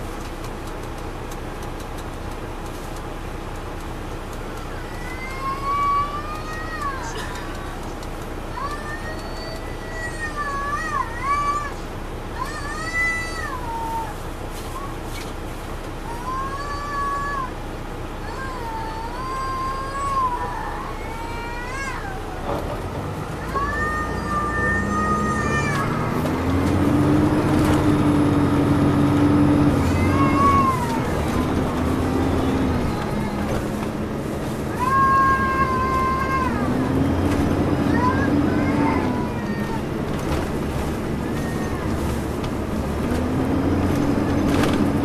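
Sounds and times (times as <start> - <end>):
bus diesel engine accelerating: 0.0 - 45.0
high-pitched bus squeals: 18.8 - 40.4, 41.2 - 45.0.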